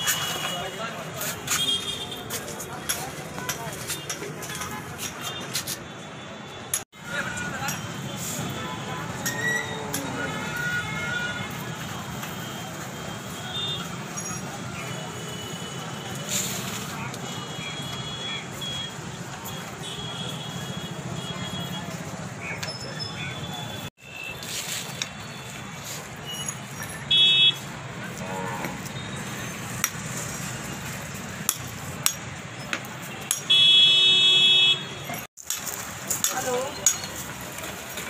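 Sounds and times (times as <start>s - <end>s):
murmur of crowd voices: 0.0s - 5.9s
traffic noise: 0.0s - 38.0s
vehicle horn honk: 27.1s - 27.6s.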